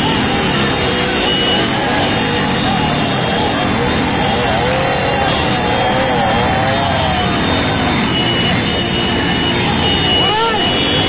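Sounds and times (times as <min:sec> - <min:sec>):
men shouting and talking: 0:00.0 - 0:11.0
motorcycle engines running: 0:00.0 - 0:11.0.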